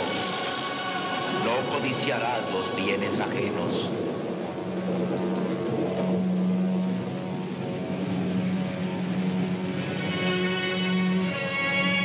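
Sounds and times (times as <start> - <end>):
held humming tone: 0.0 - 12.0
rushing noise: 0.0 - 12.0.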